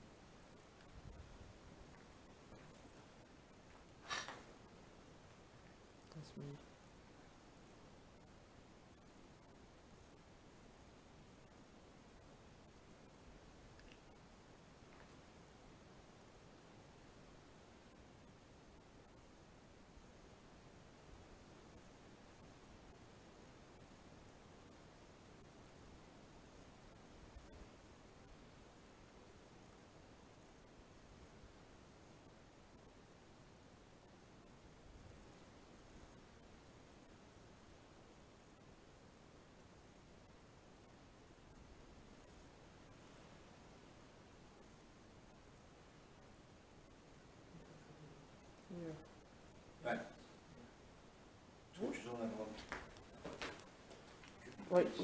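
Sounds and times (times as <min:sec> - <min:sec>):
high-pitched insect trill: 0:00.0 - 0:55.0.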